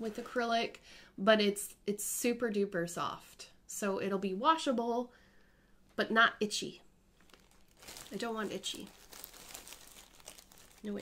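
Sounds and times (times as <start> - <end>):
plastic bag crinkling: 0.0 - 0.5, 7.2 - 11.0.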